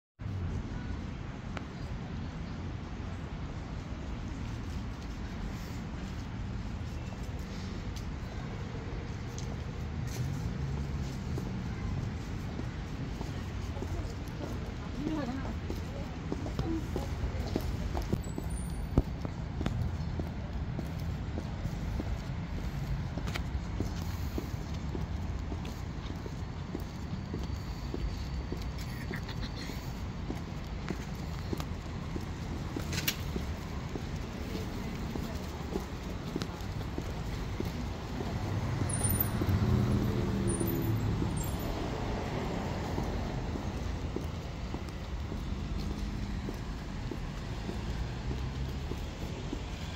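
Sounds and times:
city traffic hum: 0.2 - 49.9
rumble of passing vehicles: 0.2 - 49.9
high heels clicking on pavement: 6.8 - 49.9.

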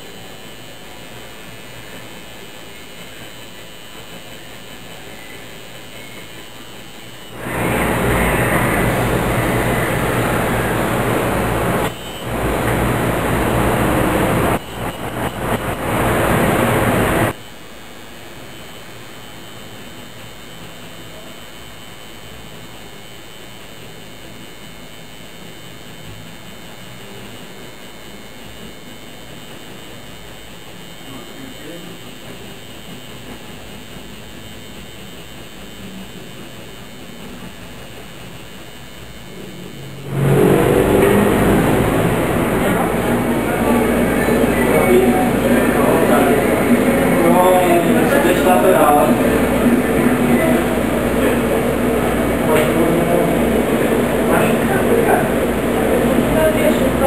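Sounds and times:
tattoo machine buzzing: 0.0 - 17.4, 19.5 - 57.0.

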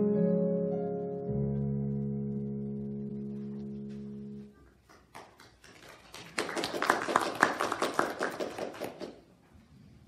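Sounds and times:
people clapping: 4.6 - 9.4.

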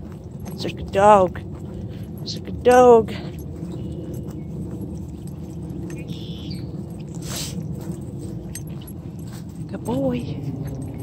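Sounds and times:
footsteps rustling in grass: 3.0 - 11.0.

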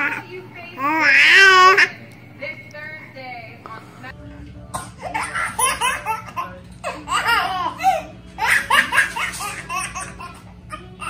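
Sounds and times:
baby giggling: 5.0 - 11.0.

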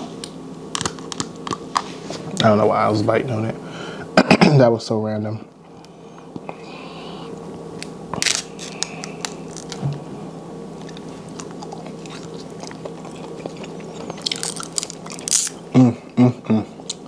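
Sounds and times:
crab shell cracking: 7.8 - 9.8, 10.8 - 15.6.

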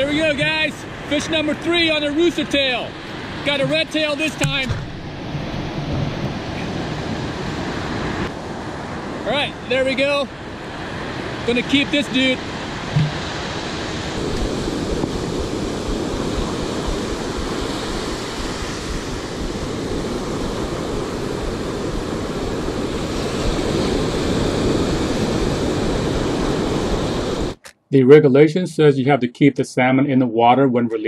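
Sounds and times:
wind buffeting microphone: 0.0 - 9.2, 12.4 - 27.6
ocean surf breaking: 0.0 - 27.6.

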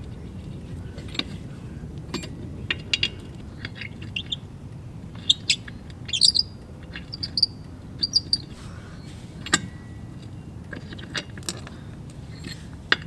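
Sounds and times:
low steady rumble: 0.0 - 13.0
birds chirping and trilling: 3.5 - 4.5, 5.2 - 9.5.

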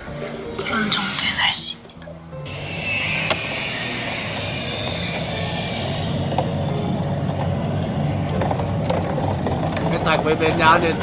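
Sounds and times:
hiss: 2.5 - 8.4.

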